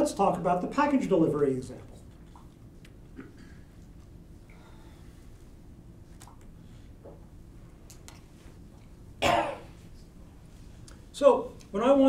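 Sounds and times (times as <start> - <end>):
man coughing: 3.2 - 3.7, 9.2 - 9.8.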